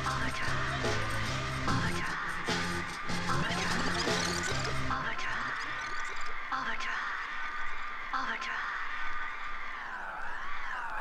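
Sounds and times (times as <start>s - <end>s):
breakbeat dj mix: 0.0s - 10.4s.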